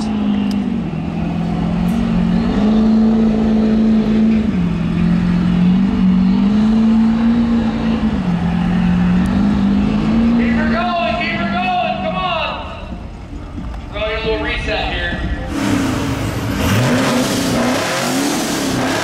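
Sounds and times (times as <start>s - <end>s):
truck engine revving: 0.0s - 13.3s, 15.1s - 19.0s
tires spinning on pavement: 0.0s - 14.2s, 15.1s - 19.0s.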